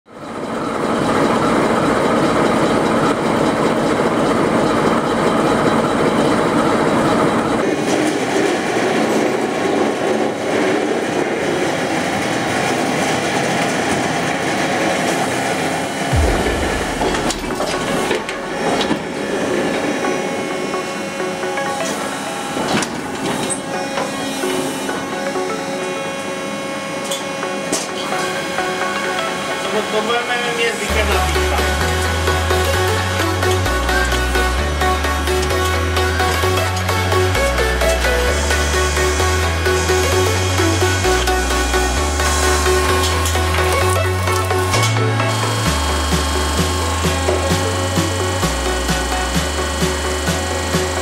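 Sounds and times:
low thud: 16.1s - 19.1s
lathe grinding steel wheel: 28.1s - 51.0s.

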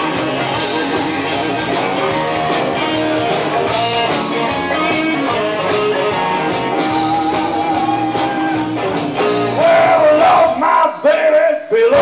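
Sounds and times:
blues band playing live: 0.0s - 10.9s
guitar: 0.0s - 12.0s.

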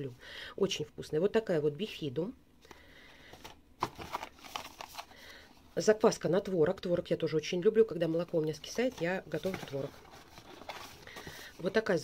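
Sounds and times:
cardboard boxes being handled: 3.4s - 5.1s, 8.4s - 12.0s.

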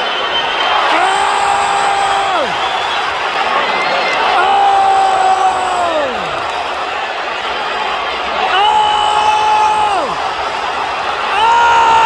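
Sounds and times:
arena crowd noise: 0.0s - 12.0s
spectator screaming: 0.8s - 2.7s, 11.2s - 12.0s.

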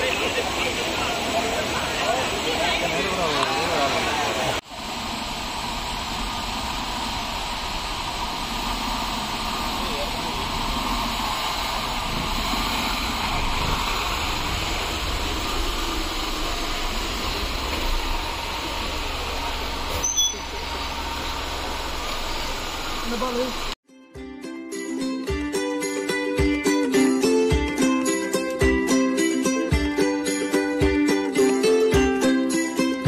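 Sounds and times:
car engine low rumble: 4.7s - 23.8s.

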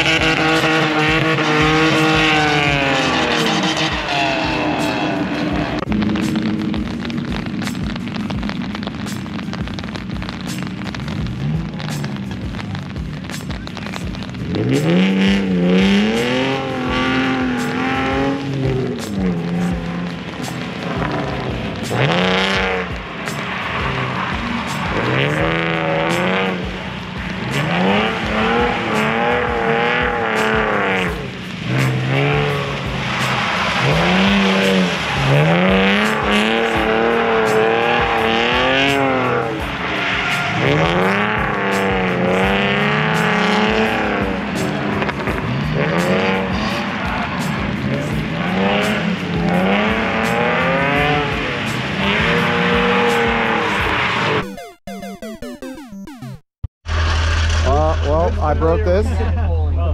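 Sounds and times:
car engine revving: 0.0s - 54.4s, 56.8s - 59.9s
tyres squealing: 27.3s - 54.2s.

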